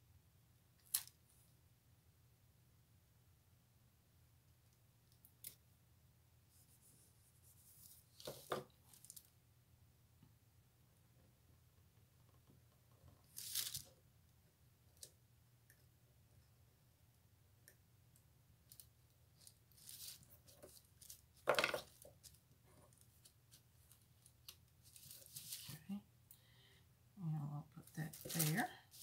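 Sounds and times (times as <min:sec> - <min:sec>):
paper handling: 0:23.1 - 0:25.8, 0:28.1 - 0:29.0.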